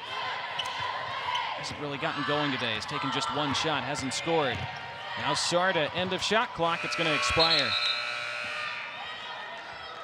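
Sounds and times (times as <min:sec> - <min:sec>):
arena crowd murmur: 0:00.0 - 0:07.8, 0:08.4 - 0:10.0.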